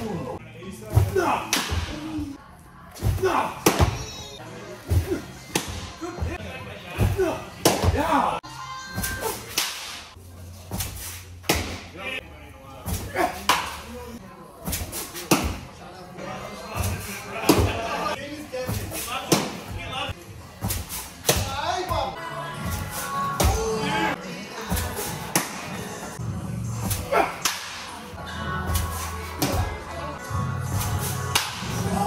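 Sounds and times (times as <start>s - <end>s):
background music: 0.0s - 14.2s, 15.0s - 32.0s
voices: 0.0s - 32.0s
baseballs smacking: 0.9s - 2.2s, 3.0s - 4.1s, 4.9s - 6.4s, 7.0s - 8.2s, 9.0s - 11.9s, 12.9s - 13.9s, 14.7s - 15.7s, 16.8s - 17.9s, 18.7s - 19.8s, 24.7s - 25.8s, 26.8s - 28.0s, 28.7s - 29.8s, 30.7s - 32.0s.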